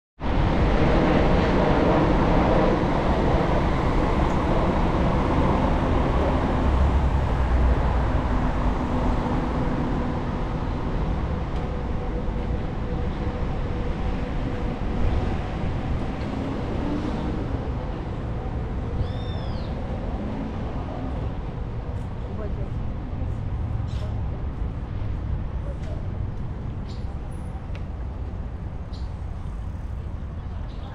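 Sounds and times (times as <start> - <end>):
city traffic: 0.2 - 30.9
wind rumble on microphone: 0.2 - 30.9.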